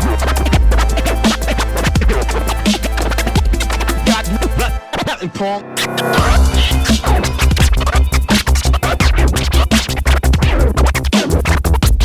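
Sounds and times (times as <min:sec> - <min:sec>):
beat with deep bass: 0:00.0 - 0:04.8, 0:05.6 - 0:12.0
vinyl record scratching: 0:00.0 - 0:12.0.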